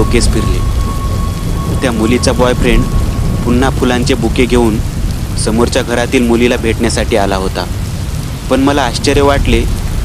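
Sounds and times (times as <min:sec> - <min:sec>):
heavy rain: 0:00.0 - 0:10.0
low rumble of thunder: 0:00.0 - 0:10.0.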